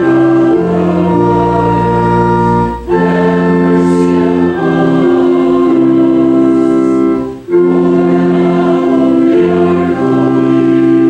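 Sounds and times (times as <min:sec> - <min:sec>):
congregation singing a hymn: 0:00.0 - 0:11.0
pipe organ chords: 0:00.0 - 0:11.0.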